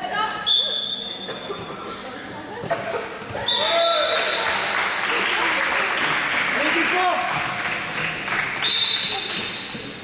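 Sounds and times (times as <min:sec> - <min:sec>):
crowd shouting and cheering: 0:03.3 - 0:04.8.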